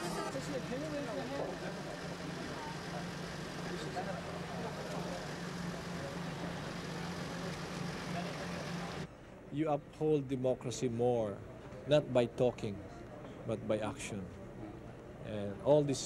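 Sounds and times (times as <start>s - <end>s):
engine idling: 0.0s - 9.1s
faint voices: 0.0s - 9.5s.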